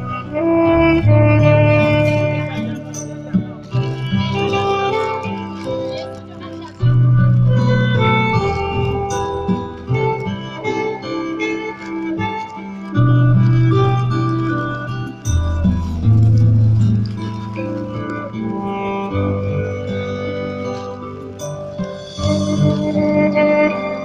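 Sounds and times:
band bass notes: 0.0 - 24.0
saxophone melody: 0.0 - 24.0.

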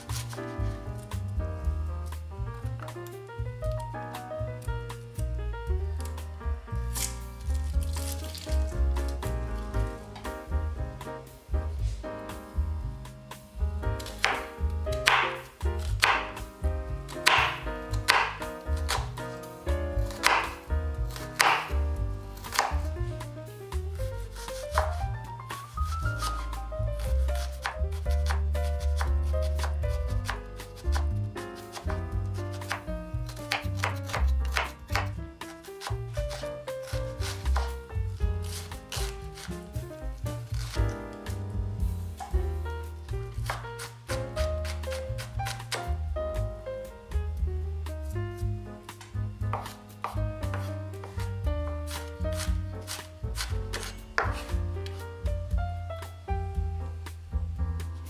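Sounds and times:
knife chopping on wooden board: 0.0 - 1.2, 6.9 - 10.4, 14.0 - 19.4, 20.0 - 23.3, 24.2 - 25.1, 25.7 - 46.5, 48.9 - 55.1
background music with bass: 0.0 - 58.0.

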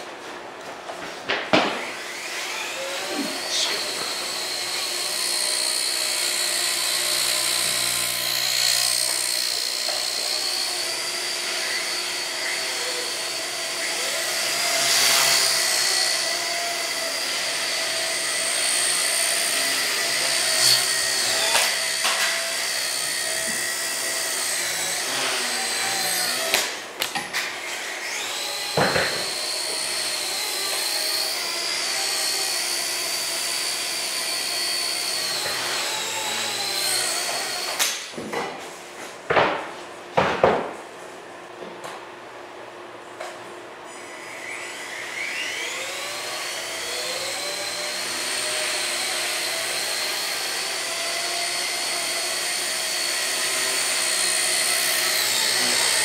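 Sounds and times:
toy helicopter rotor whining: 1.8 - 38.1, 44.0 - 56.0.

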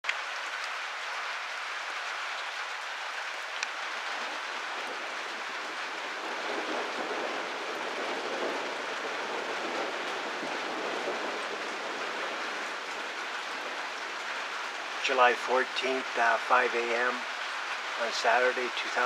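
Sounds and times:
steady rain hiss: 0.0 - 19.0.

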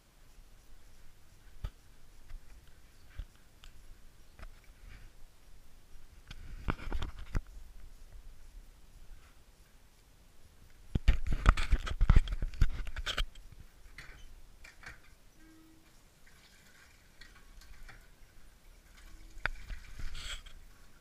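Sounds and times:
water pouring into metal sink: 15.6 - 21.0.

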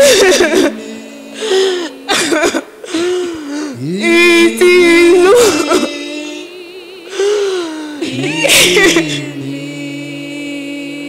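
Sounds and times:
people wailing and sobbing in prayer: 0.0 - 11.0.

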